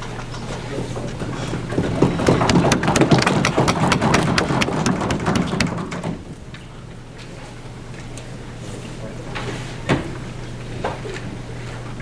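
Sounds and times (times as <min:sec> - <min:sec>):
audience applause: 0:01.8 - 0:06.0.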